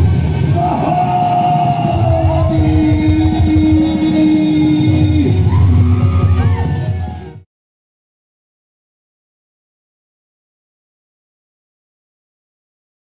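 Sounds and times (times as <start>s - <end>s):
heavy steady low beat: 0.0s - 7.4s
live band music: 0.0s - 7.4s.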